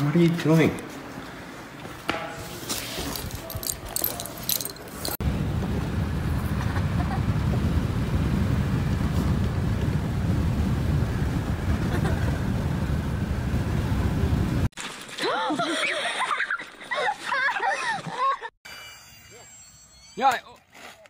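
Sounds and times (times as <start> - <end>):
road noise: 0.0 - 14.7
wind buffeting through car window: 5.2 - 14.7.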